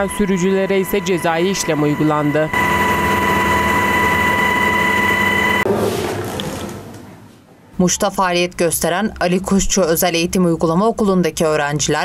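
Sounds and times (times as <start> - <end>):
helicopter cabin rush and whine: 0.0 - 5.7
room noise: 0.0 - 8.3.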